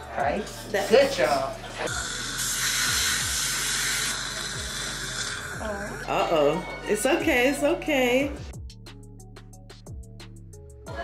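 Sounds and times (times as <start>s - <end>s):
background music: 0.0s - 11.0s
dental instrument hissing: 0.7s - 6.5s.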